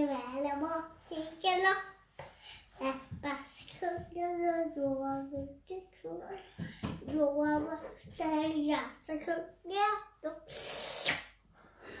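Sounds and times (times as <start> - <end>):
girl singing: 0.0 - 11.1
hissy rush of breath: 10.5 - 12.0.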